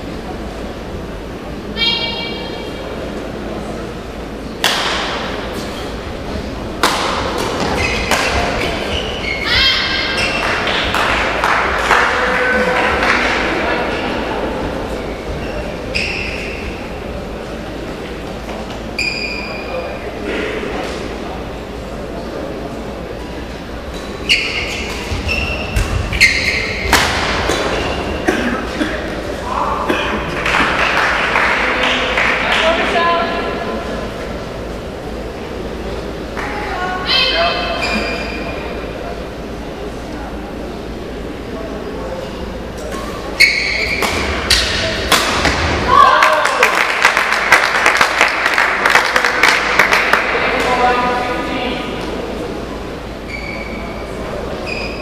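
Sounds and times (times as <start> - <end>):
racket striking shuttlecock: 6.8 - 8.8, 43.9 - 45.7
shoes squeaking on court: 7.4 - 10.7, 15.0 - 16.8, 18.4 - 19.7, 23.9 - 28.2, 37.8 - 38.7, 53.2 - 55.0.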